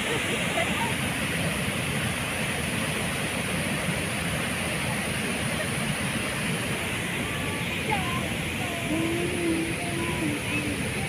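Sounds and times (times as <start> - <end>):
river rushing over a weir: 0.0 - 11.0.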